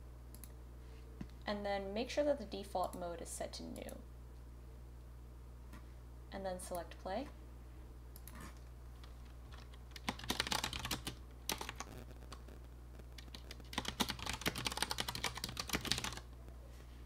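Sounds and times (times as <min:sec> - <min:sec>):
typing on keyboard: 0:09.0 - 0:12.4, 0:13.2 - 0:16.3.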